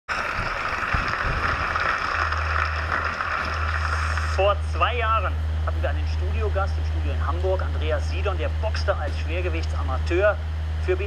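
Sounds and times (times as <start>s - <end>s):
studio audience applauding: 0.1s - 4.6s
steady low hum: 0.1s - 11.0s.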